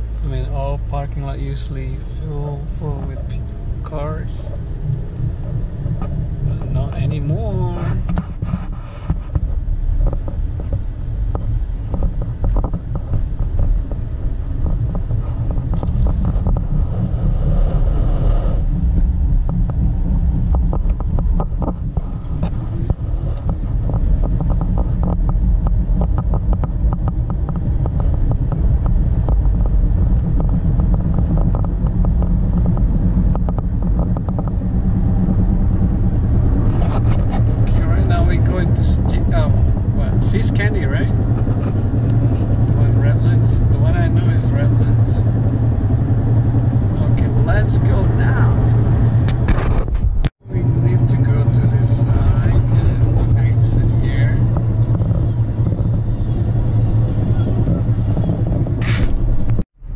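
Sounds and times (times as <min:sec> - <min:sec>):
car road and engine rumble: 0:00.0 - 0:59.9
people talking: 0:00.2 - 0:04.6, 0:06.4 - 0:08.0, 0:37.4 - 0:41.2, 0:42.6 - 0:45.2, 0:47.0 - 0:48.7, 0:50.5 - 0:54.6, 0:55.2 - 0:58.0.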